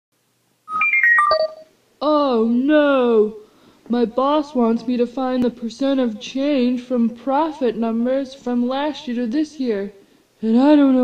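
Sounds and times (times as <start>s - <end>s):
short electronic chime: 0.7s - 1.7s.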